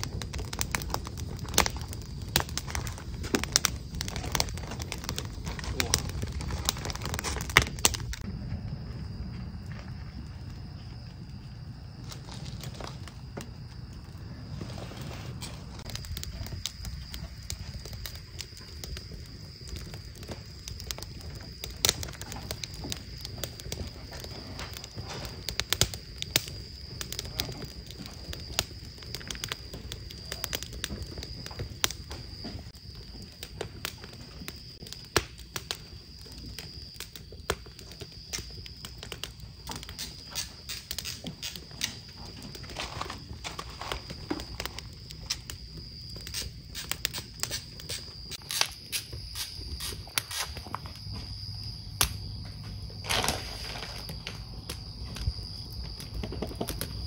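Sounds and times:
wood fire crackling and popping: 0.0 - 57.0
low rumble: 1.2 - 16.7.

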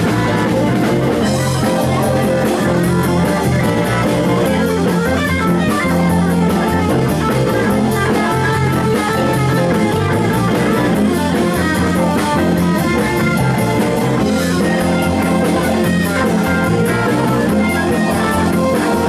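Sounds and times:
bass line: 0.0 - 19.0
drum kit: 0.0 - 19.0
electric guitar: 0.0 - 19.0.

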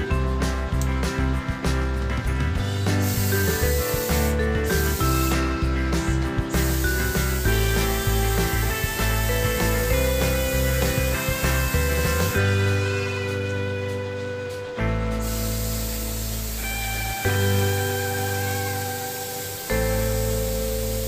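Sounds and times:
background music: 0.0 - 21.0
spray gun hissing: 2.8 - 13.1, 15.1 - 21.0.

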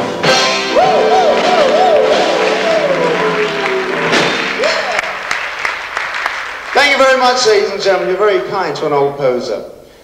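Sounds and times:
audience applause: 0.7 - 7.6.

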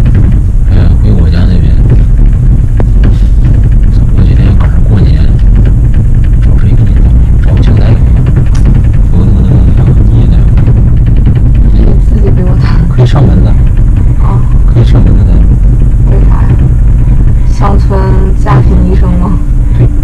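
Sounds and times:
cable car cabin rumbling: 0.0 - 20.0.

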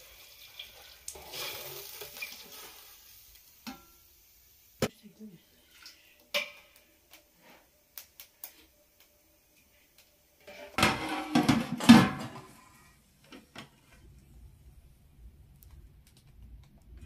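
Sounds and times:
pots and lids clattering: 3.6 - 4.0, 5.7 - 6.8, 10.4 - 13.7.

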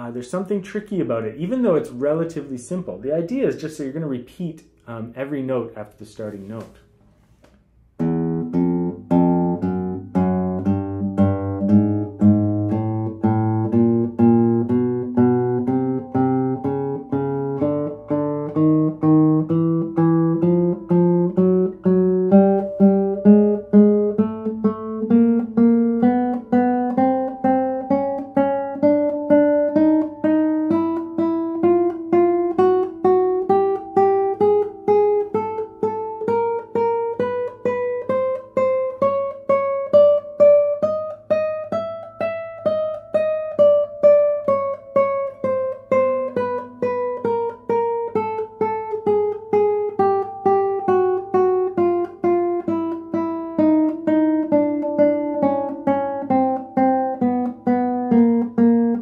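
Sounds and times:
classical guitar playing a scale: 6.3 - 59.0.

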